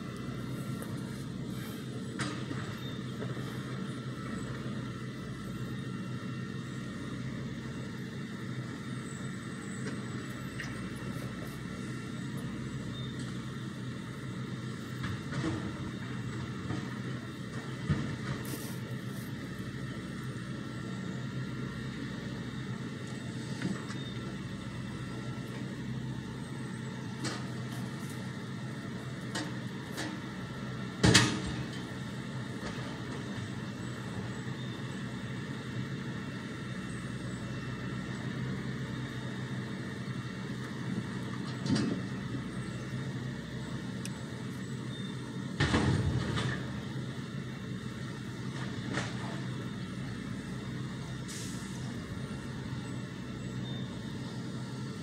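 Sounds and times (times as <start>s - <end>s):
machine running steadily: 0.0s - 55.0s.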